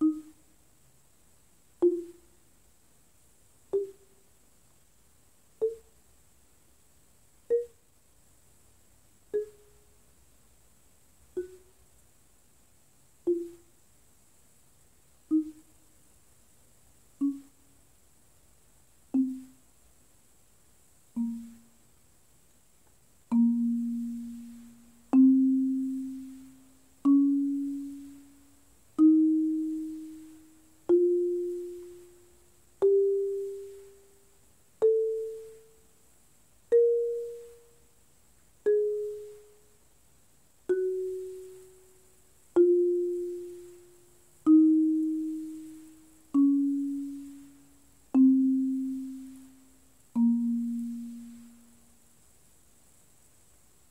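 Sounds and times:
marimba notes: 0:00.0 - 0:00.4, 0:01.8 - 0:02.3, 0:03.7 - 0:04.1, 0:05.6 - 0:05.9, 0:07.5 - 0:07.8, 0:09.4 - 0:09.8, 0:11.4 - 0:11.8, 0:13.2 - 0:13.7, 0:15.3 - 0:15.7, 0:17.2 - 0:17.6, 0:19.1 - 0:19.6, 0:21.2 - 0:21.8, 0:23.3 - 0:35.9, 0:36.7 - 0:37.8, 0:38.6 - 0:39.7, 0:40.7 - 0:51.8.

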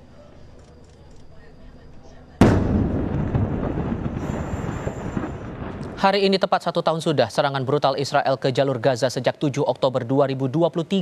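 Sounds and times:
crackling of smaller bursts: 0:00.5 - 0:06.1
loud explosion blast: 0:02.4 - 0:06.3.

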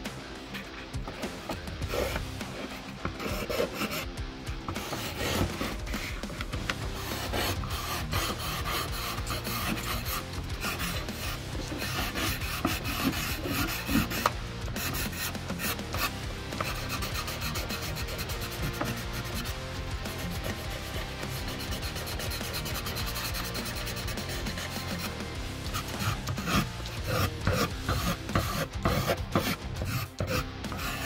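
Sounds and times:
pencil scratching on paper: 0:00.6 - 0:04.1, 0:04.7 - 0:31.0.

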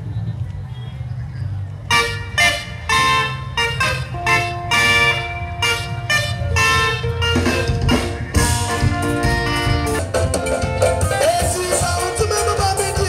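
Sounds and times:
vehicle horns honking: 0:01.9 - 0:10.3.

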